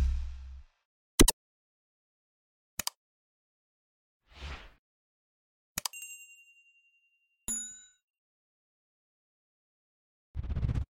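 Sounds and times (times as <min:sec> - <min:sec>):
click with chime: 0:05.8 - 0:06.6
click with bright ding: 0:07.5 - 0:08.0.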